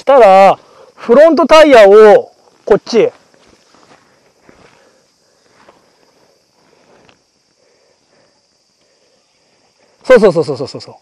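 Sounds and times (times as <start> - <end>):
footsteps on muddy dirt trail: 2.4 - 7.4.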